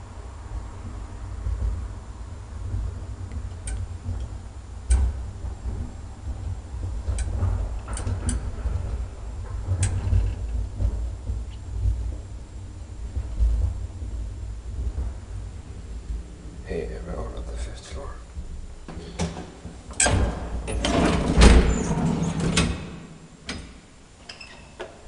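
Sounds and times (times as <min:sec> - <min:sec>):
elevator car rumbling: 0:00.0 - 0:25.0
elevator clicks and ticks: 0:02.7 - 0:11.7.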